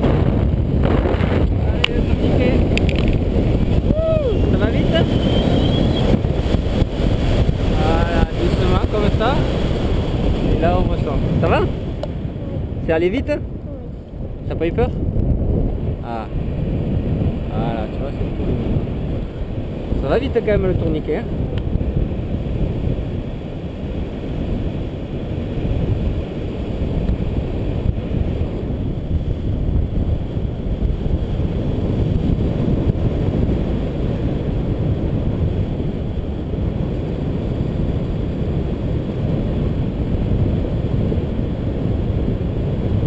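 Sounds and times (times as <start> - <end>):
wind rumbling over microphone: 0.0 - 43.0.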